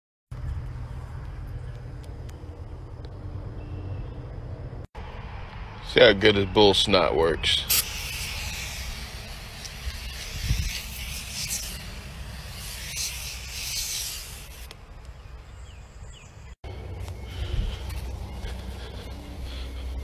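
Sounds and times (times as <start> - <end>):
steady low rumble: 0.3 - 6.2, 14.7 - 20.0
aerosol can spraying: 7.7 - 14.8.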